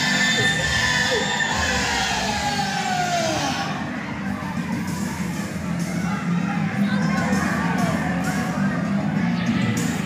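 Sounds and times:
crowd shouting and cheering: 0.0 - 10.0.

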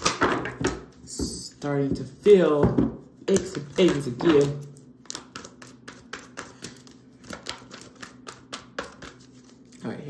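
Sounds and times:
cards being shuffled: 3.2 - 9.9.

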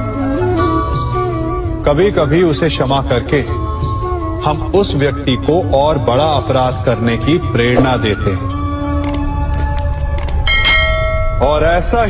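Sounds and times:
background music drone: 0.0 - 12.0
bell ringing: 10.4 - 12.0.

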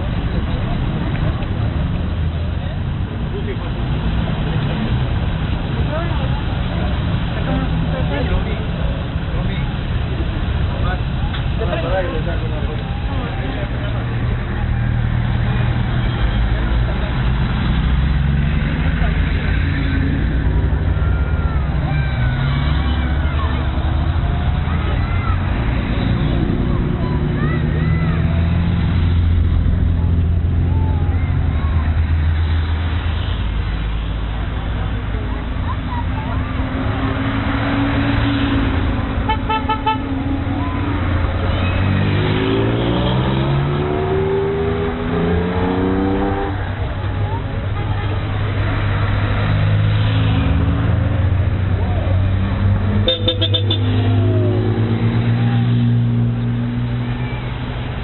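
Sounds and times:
car engines running: 0.0 - 58.0
onlookers' voices: 0.0 - 58.0
engine revving: 36.3 - 47.4
car horn toots: 53.0 - 54.0.

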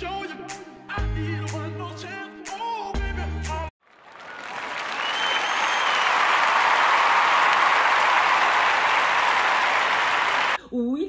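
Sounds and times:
music: 0.0 - 3.7
applause: 3.8 - 10.6.

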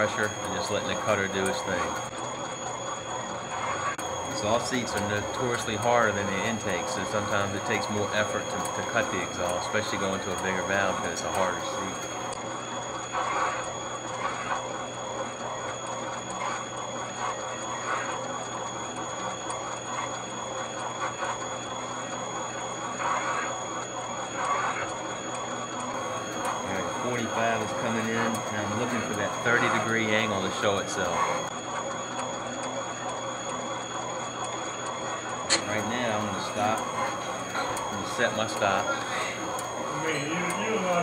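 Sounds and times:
machine whine: 0.0 - 41.0.

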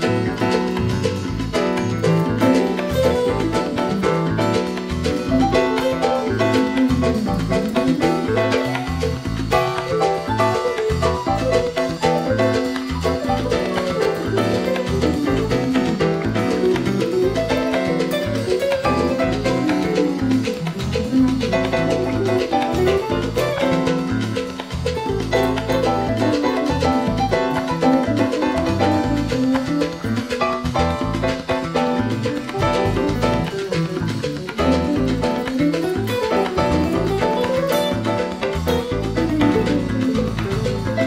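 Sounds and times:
backing track with bass and chords: 0.0 - 41.0
electric guitar solo: 0.0 - 41.0.

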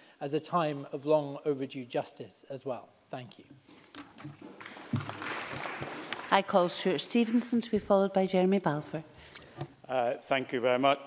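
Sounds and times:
applause: 4.5 - 6.8.

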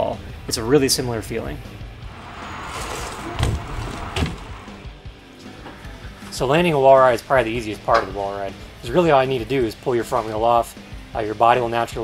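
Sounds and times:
background music: 0.0 - 12.0
bike tyres thudding on ramp: 2.1 - 4.8.

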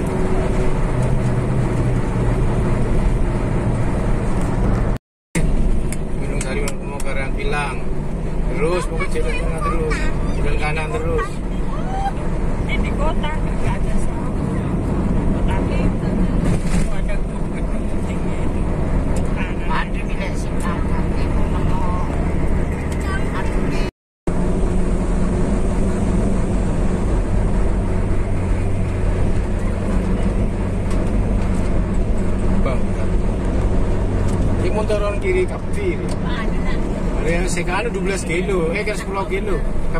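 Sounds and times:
engine drone: 0.0 - 39.9
road rumble: 0.0 - 39.9.

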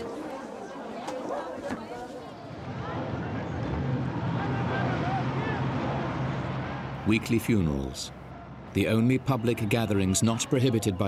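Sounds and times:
faint voices: 0.0 - 6.1.

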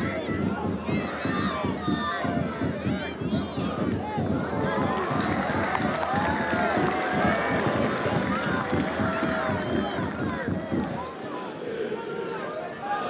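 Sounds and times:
stadium crowd shouting: 0.0 - 13.0.

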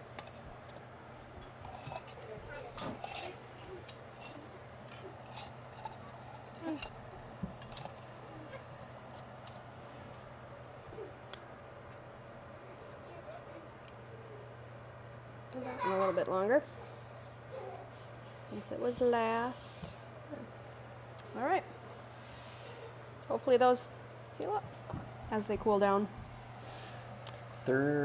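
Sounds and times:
steady low hum: 0.0 - 28.0.

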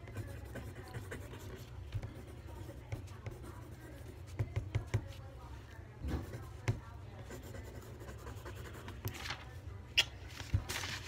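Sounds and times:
pencil scratching on paper: 0.0 - 5.3, 6.0 - 9.1.

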